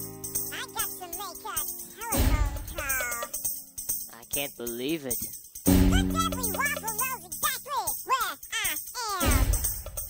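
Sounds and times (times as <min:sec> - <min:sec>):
deep bass hit: 0:05.7 - 0:06.6.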